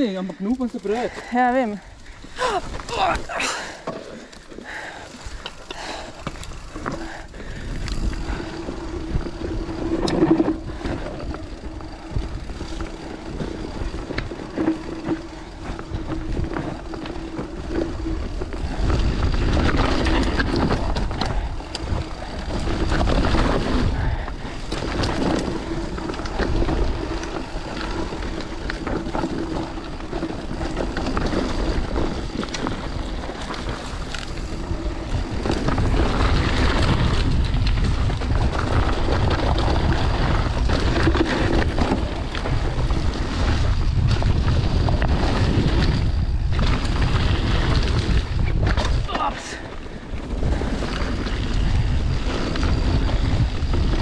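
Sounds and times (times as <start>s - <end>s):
bike rattling over bumps: 0.0s - 54.0s
bike tyres rolling on dirt: 0.0s - 54.0s
wind on microphone: 5.8s - 54.0s.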